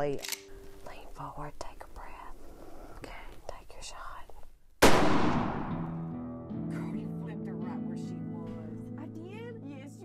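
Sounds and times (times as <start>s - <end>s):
person whispering: 0.8s - 4.5s
gunshot: 4.8s - 6.0s.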